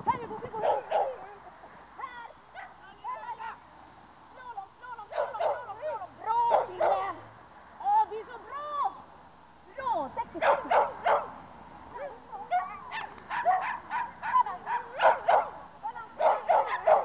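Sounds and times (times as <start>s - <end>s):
dog barking: 0.6s - 1.3s, 2.6s - 2.8s, 5.1s - 7.1s, 10.4s - 11.4s, 12.0s - 15.6s, 16.2s - 17.0s.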